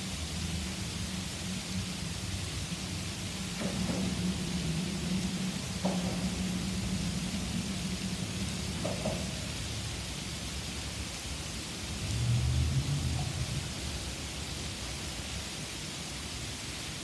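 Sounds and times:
hard rain hissing: 0:00.0 - 0:17.0
low rumble: 0:01.3 - 0:14.8.

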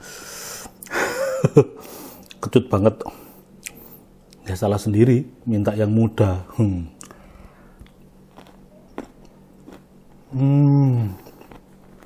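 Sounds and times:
man inhaling with a hiss: 0:00.0 - 0:01.0, 0:01.8 - 0:02.3
sharp mouth clicks: 0:03.6 - 0:04.4, 0:07.0 - 0:07.2.

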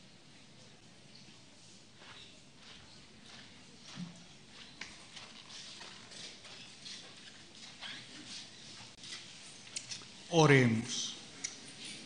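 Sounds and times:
footsteps on hard floor: 0:02.0 - 0:09.3.

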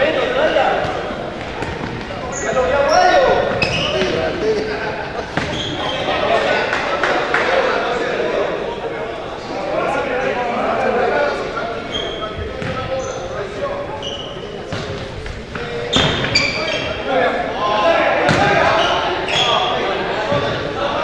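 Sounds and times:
sneakers squeaking: 0:00.0 - 0:06.6, 0:11.5 - 0:21.0
players calling out: 0:00.0 - 0:21.0.

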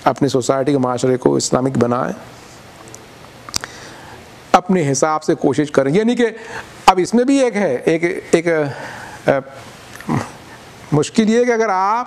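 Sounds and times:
man speaking: 0:00.0 - 0:02.3, 0:04.5 - 0:12.0.

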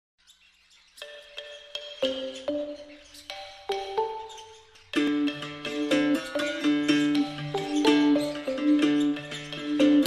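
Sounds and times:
soundtrack music with chirpy tones: 0:01.0 - 0:10.0.

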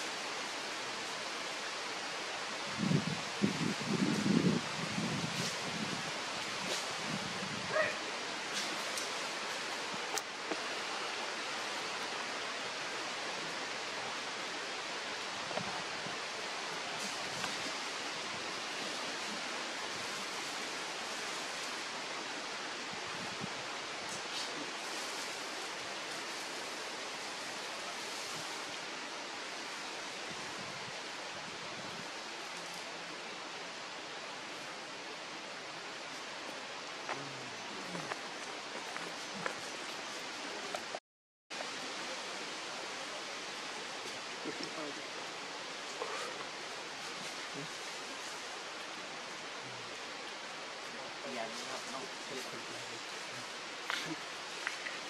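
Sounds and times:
steady outdoor hiss: 0:00.0 - 0:55.0.

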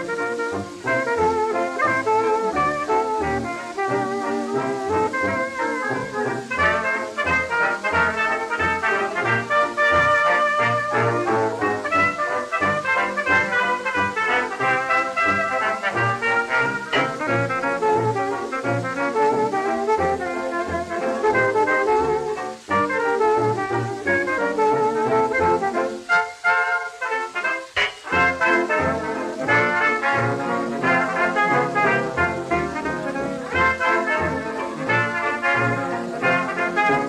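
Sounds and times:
dance orchestra playing: 0:00.0 - 0:37.0.

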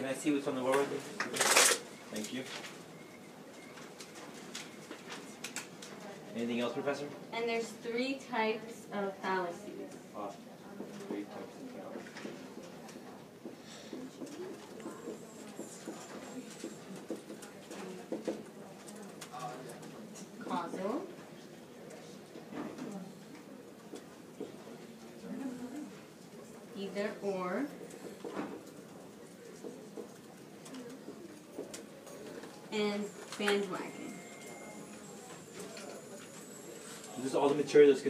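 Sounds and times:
low soft voices: 0:09.7 - 0:26.8, 0:27.7 - 0:37.2.

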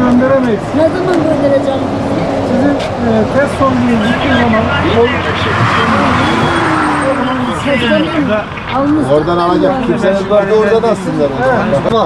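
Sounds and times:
road vehicle noise: 0:00.0 - 0:12.0
voices talking: 0:00.0 - 0:12.0.

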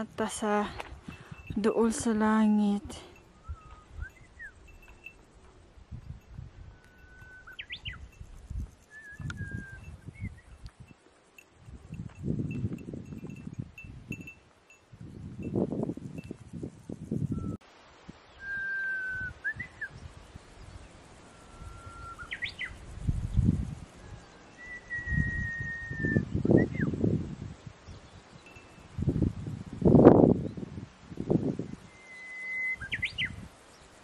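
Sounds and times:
wind buffeting microphone: 0:00.0 - 0:11.0, 0:11.6 - 0:17.6, 0:18.5 - 0:32.0, 0:32.8 - 0:33.8
bird whistling: 0:03.4 - 0:04.6, 0:06.8 - 0:08.0, 0:08.9 - 0:10.4, 0:18.3 - 0:20.0, 0:21.3 - 0:22.8, 0:24.5 - 0:26.9, 0:31.9 - 0:33.4.

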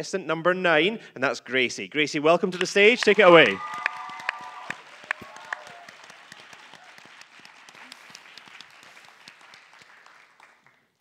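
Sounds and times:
audience applauding: 0:02.6 - 0:11.0.

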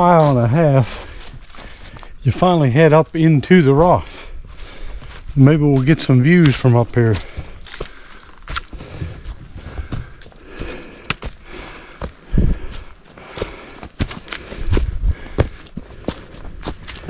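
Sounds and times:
footsteps through dry leaves: 0:00.0 - 0:17.0.

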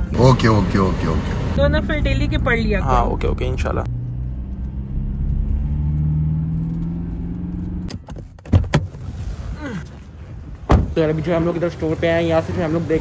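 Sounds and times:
car door opening with knocks: 0:07.9 - 0:09.0, 0:10.6 - 0:11.0.

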